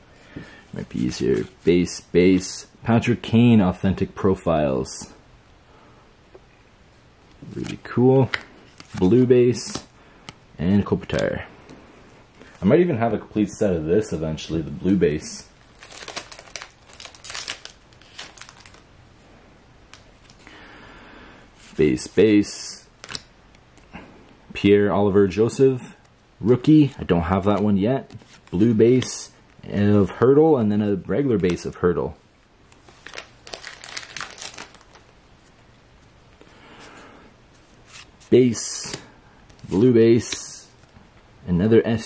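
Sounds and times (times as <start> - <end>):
cards rustling: 7.4 - 9.9, 14.8 - 18.8, 23.0 - 23.3, 32.7 - 37.0
foil wrapper crinkling: 15.6 - 18.8, 32.8 - 35.2.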